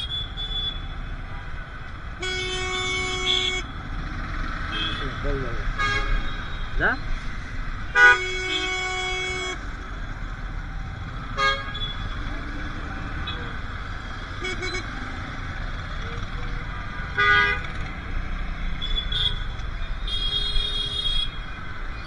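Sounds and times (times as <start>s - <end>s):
idling engines rumble: 0.8s - 22.0s
vehicle horns: 2.2s - 3.9s, 4.6s - 6.9s, 7.9s - 9.8s, 11.3s - 12.3s, 14.2s - 15.2s, 17.0s - 21.5s.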